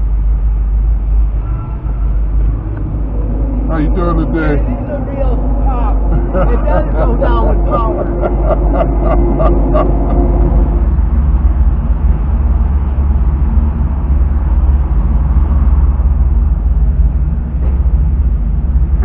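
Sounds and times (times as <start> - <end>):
car engine rumbling: 0.0 - 19.0.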